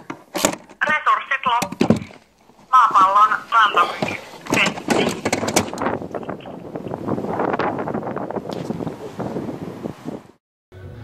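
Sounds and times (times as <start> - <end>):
wind buffeting microphone: 3.0 - 10.4.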